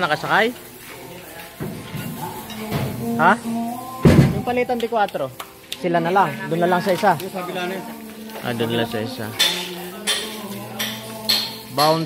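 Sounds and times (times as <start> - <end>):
heavy thump: 4.0 - 4.5
people talking: 4.2 - 11.1, 11.7 - 12.0.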